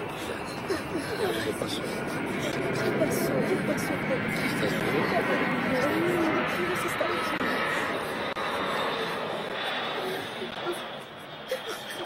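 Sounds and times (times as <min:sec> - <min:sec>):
jet engines running: 0:00.0 - 0:12.0.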